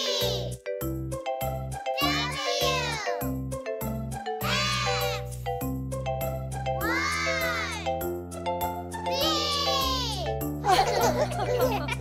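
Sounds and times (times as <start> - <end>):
children's voices: 0.0 - 0.5, 2.0 - 3.2, 4.4 - 5.3, 9.1 - 10.3
children's song music: 0.0 - 12.0.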